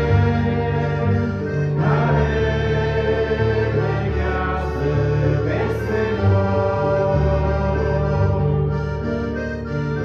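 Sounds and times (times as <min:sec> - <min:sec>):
choir singing a hymn: 0:00.0 - 0:09.7
instrumental backing: 0:00.0 - 0:10.0.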